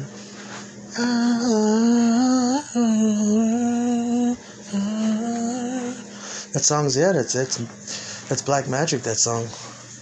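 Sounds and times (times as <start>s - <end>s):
man singing wordless melody: 1.0s - 6.1s
man breathing: 6.1s - 6.6s, 7.9s - 8.3s.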